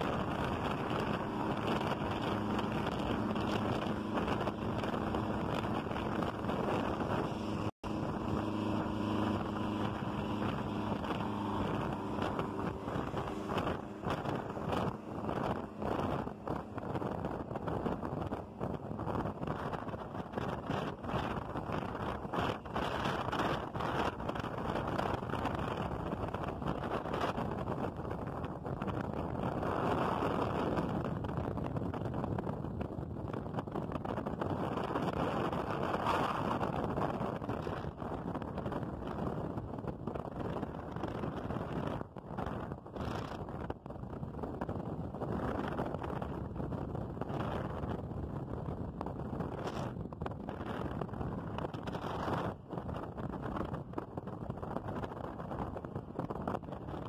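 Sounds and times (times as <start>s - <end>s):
diesel bus engine drone: 0.0s - 25.8s
road and tyre noise: 0.0s - 57.0s
wind buffeting microphone: 0.0s - 57.0s.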